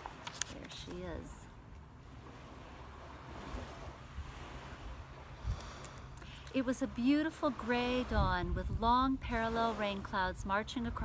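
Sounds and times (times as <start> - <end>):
wind buffeting microphone: 2.2 - 11.0.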